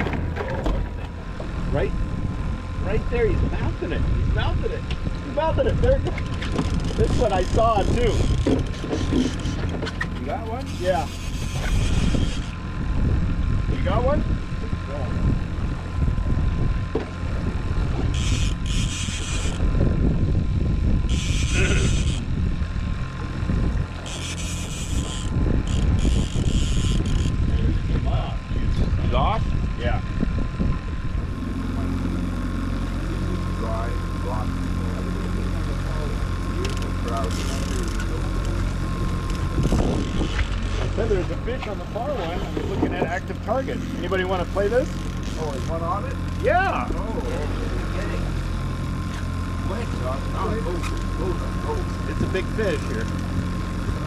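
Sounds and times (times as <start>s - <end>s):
wind rumble on microphone: 0.0s - 10.2s, 10.9s - 33.6s, 35.4s - 45.5s, 50.6s - 54.0s
outboard motor running: 0.0s - 54.0s.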